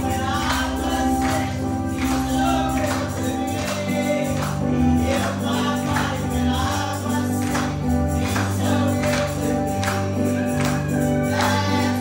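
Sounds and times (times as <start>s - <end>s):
tambourine keeping the beat: 0.0s - 12.0s.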